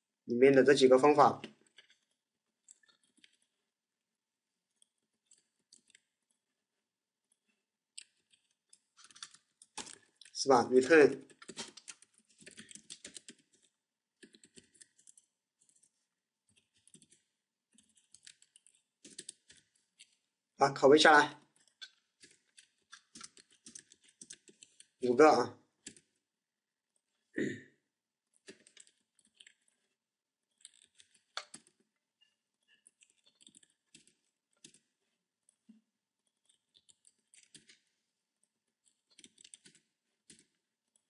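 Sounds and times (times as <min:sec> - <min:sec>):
keyboard typing: 0:08.0 - 0:20.2, 0:21.5 - 0:26.2, 0:30.6 - 0:31.8, 0:32.8 - 0:35.0, 0:38.8 - 0:41.0.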